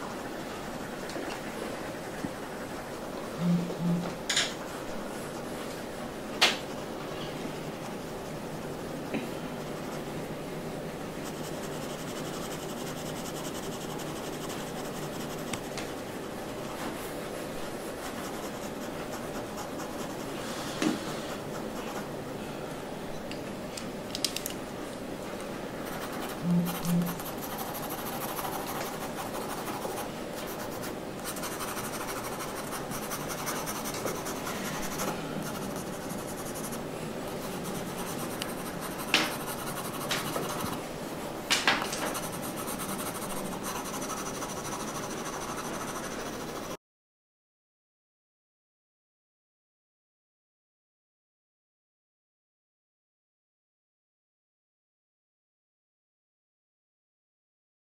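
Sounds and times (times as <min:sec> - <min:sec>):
pencil scratching on paper: 0:00.6 - 0:04.0, 0:06.7 - 0:08.9, 0:11.2 - 0:20.4, 0:25.8 - 0:40.9, 0:42.0 - 0:46.8.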